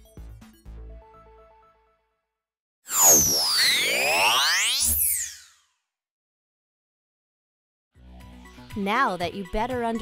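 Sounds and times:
swooping electronic tones: 2.9 - 5.6.

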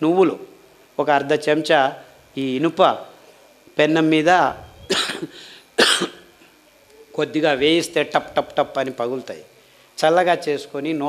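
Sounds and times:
man coughing: 4.8 - 6.3.

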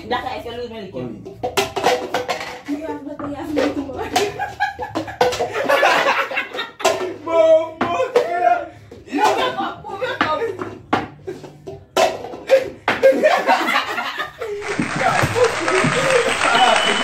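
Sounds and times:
plastic cups knocking on wooden table: 1.3 - 13.2, 14.6 - 16.8
people laughing: 4.0 - 7.2, 9.1 - 10.5, 12.5 - 17.0.

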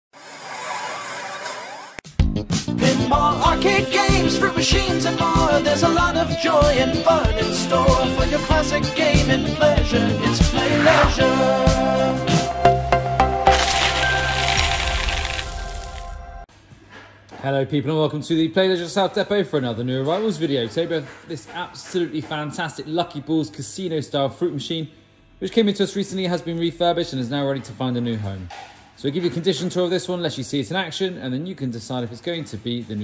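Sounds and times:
jingle notes ringing: 12.9 - 16.4.

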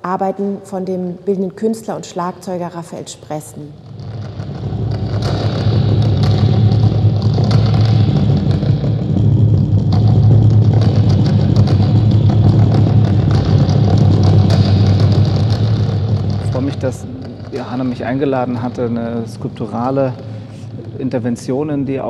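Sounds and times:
mallets rolling low rumble: 3.7 - 22.0.

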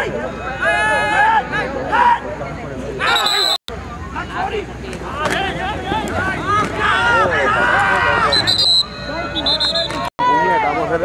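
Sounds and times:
referee's whistle blasts: 3.0 - 3.6, 8.2 - 10.1
spectators shouting: 5.0 - 11.0.

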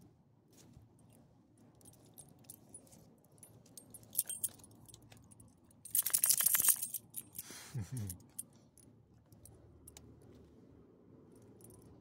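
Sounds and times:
dog collar tags jingling: 3.5 - 5.1, 5.9 - 8.5.

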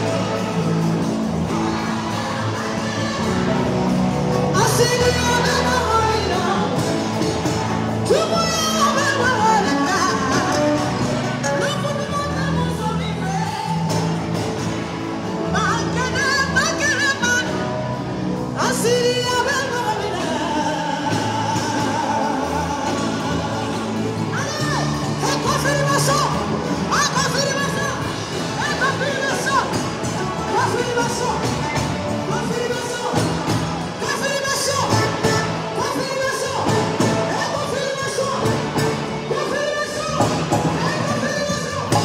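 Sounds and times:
amplified backing music: 0.0 - 42.0
woman singing into microphone: 1.5 - 7.3, 8.0 - 14.2, 18.6 - 31.4.

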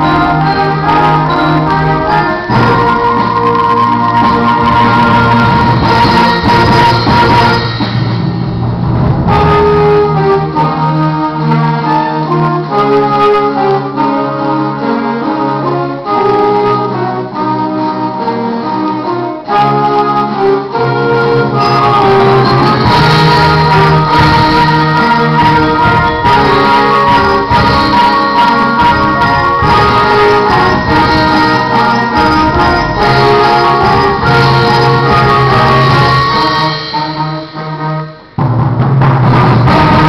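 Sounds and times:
concert band wind chords: 0.0 - 40.0.

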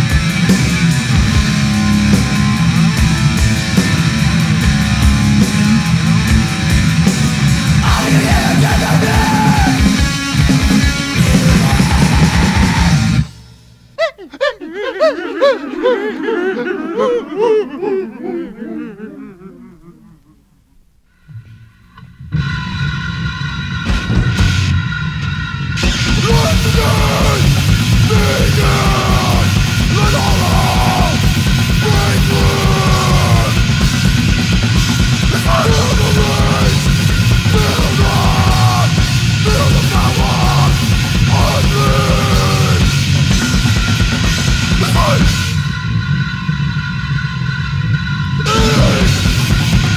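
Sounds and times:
fast pounding drums: 0.0 - 13.6, 23.8 - 46.0, 48.4 - 49.9
heavily distorted guitar: 0.0 - 14.0, 21.4 - 49.9.

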